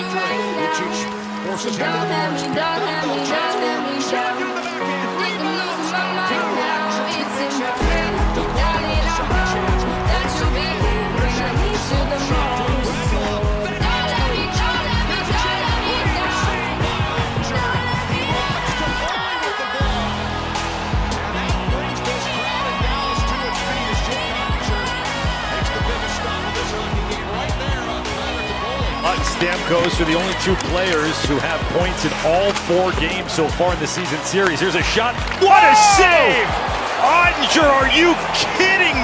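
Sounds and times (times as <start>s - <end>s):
background music: 0.0s - 39.0s
song with deep drum beat: 7.8s - 19.2s.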